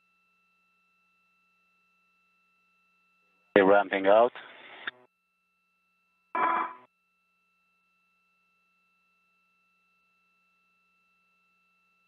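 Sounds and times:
faint steady electronic tone: 0.0 - 12.0
radio voice fragment: 6.4 - 6.8.

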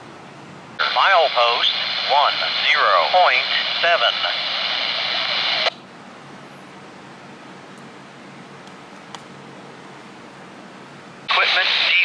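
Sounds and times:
scanner radio hiss: 0.8 - 5.8, 11.3 - 12.0.

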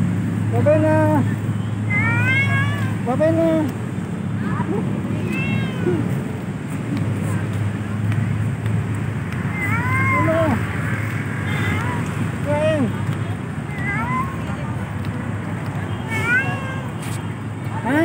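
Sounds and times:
cat meowing: 5.1 - 6.1, 9.5 - 10.4.

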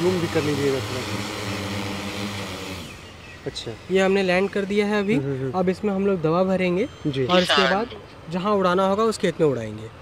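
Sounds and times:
drone propeller hum: 0.0 - 4.7.

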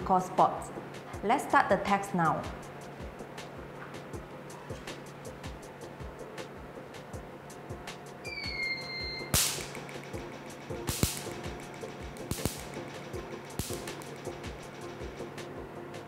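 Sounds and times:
soft background music: 0.0 - 16.0
laser pulses snapping: 9.3 - 14.4.

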